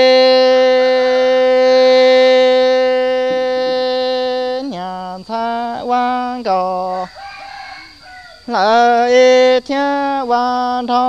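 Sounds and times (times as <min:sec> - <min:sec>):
man singing long notes: 0:00.0 - 0:07.1, 0:08.5 - 0:11.0.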